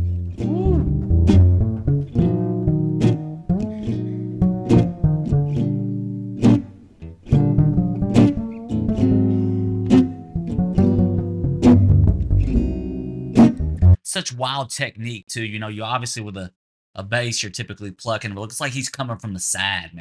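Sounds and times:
acoustic guitar strumming chords: 0.0s - 14.0s
double bass plucking: 0.0s - 14.0s.

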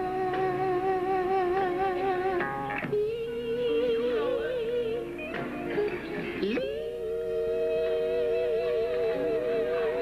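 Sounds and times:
gospel quartet singing: 2.9s - 10.0s.

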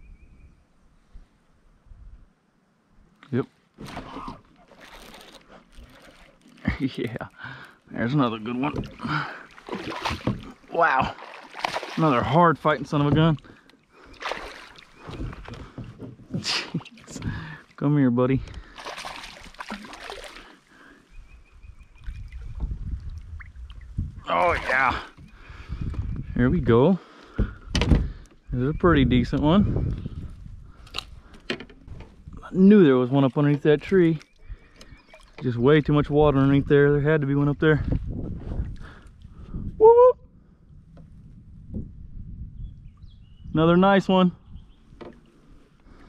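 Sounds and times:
quiet water sounds: 0.6s - 46.0s
light water sounds: 3.7s - 17.8s, 18.4s - 20.7s, 32.8s - 35.9s
low bumps against kayak: 8.5s - 12.0s, 12.8s - 13.5s, 14.2s - 16.9s, 22.1s - 23.0s, 27.3s - 28.3s
fish splashing at surface: 9.5s - 10.6s, 11.2s - 12.1s, 18.7s - 20.5s.

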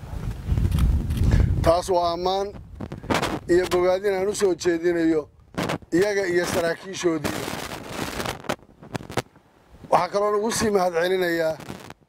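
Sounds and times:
sharp cracks: 2.8s - 4.5s, 5.4s - 9.4s, 11.5s - 12.0s.

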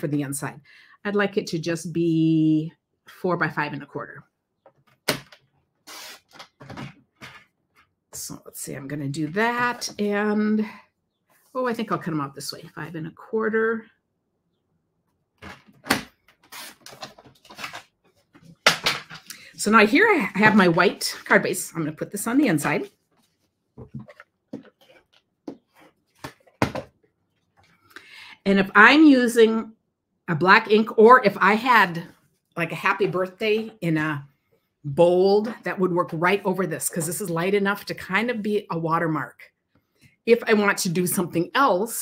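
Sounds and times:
card rustling and tapping: 23.2s - 27.0s.

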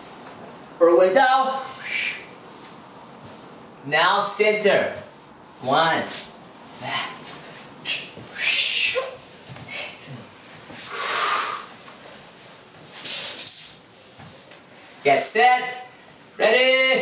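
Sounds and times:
man exhaling heavily: 10.9s - 11.7s.

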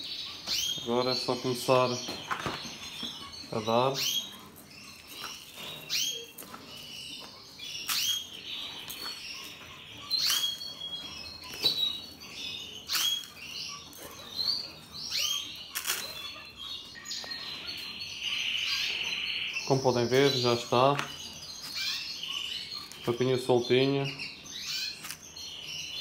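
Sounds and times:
bird trilling: 0.0s - 26.0s
canaries chirping: 0.0s - 26.0s.

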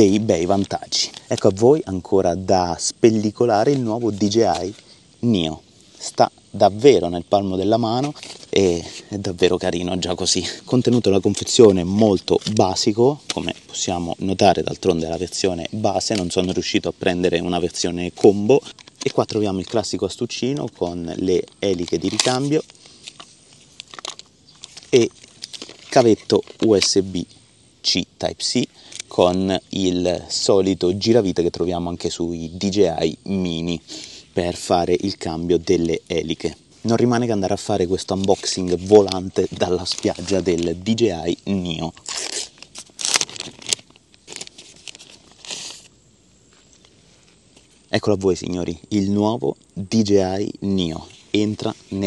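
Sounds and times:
plastic bag crinkling: 7.9s - 27.2s, 35.8s - 45.9s.

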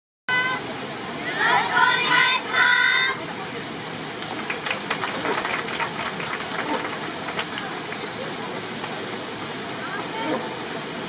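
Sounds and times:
water cascading down stone wall: 3.2s - 11.0s.

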